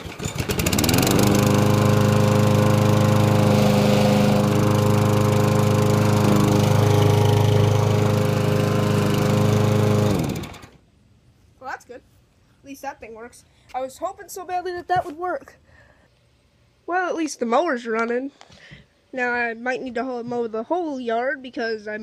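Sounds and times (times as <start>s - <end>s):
lawn mower engine running: 0.0s - 10.8s.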